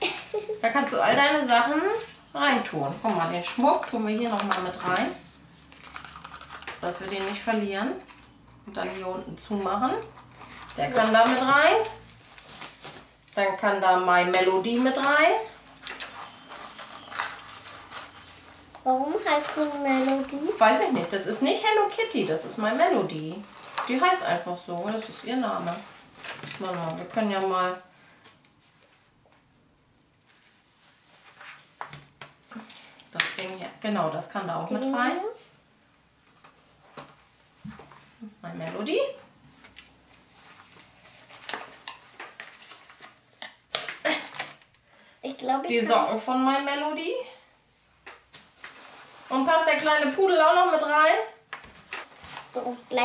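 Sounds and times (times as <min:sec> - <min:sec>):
fabric bag rustling and crinkling: 0:09.8 - 0:13.6, 0:14.6 - 0:29.1, 0:48.4 - 0:50.5, 0:51.6 - 0:53.0
light scratching and handling: 0:14.3 - 0:29.4, 0:51.5 - 0:53.0.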